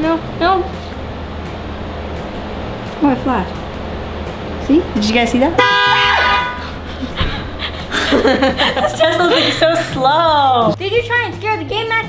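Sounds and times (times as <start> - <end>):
faint background music: 0.0 - 12.0
car horn honking: 5.6 - 6.8.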